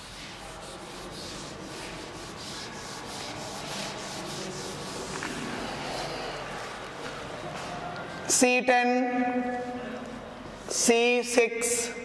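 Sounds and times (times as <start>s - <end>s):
eraser wiping whiteboard: 0.0s - 7.0s.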